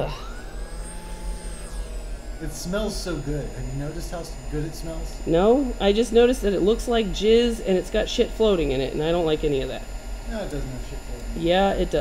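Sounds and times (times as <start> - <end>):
electric blower motor whirring: 0.0 - 12.0
low electrical hum: 0.0 - 12.0.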